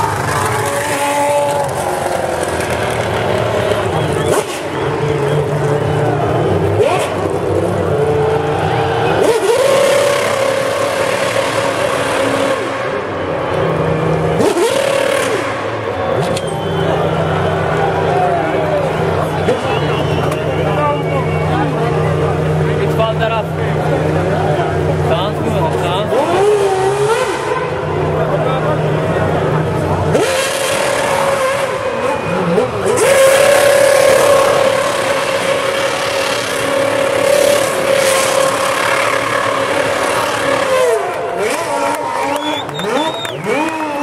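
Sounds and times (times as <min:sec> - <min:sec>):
race car engine at high revs: 0:00.0 - 0:44.0.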